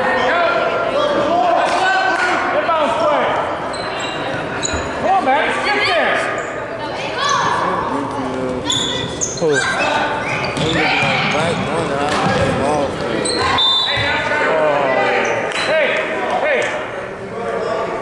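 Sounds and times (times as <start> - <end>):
voices calling out and chattering: 0.0 - 18.0
basketball bouncing on wooden court: 10.5 - 12.7.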